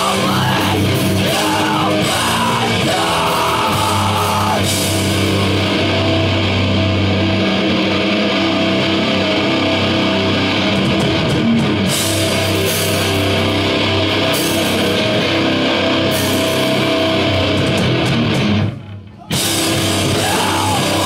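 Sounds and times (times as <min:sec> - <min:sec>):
distorted electric guitar: 0:00.0 - 0:21.0
drums: 0:00.0 - 0:21.0.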